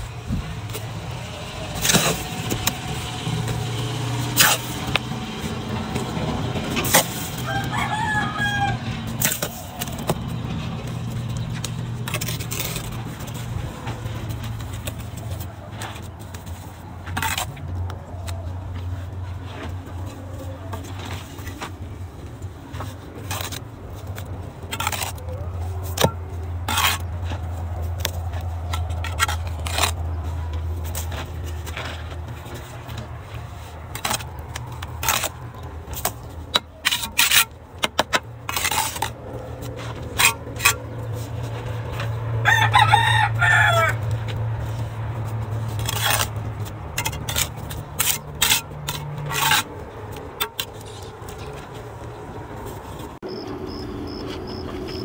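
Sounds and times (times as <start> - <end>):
trowel scraping bricks and mortar: 0.3 - 53.2
rooster crowing: 7.3 - 9.2, 42.4 - 44.1.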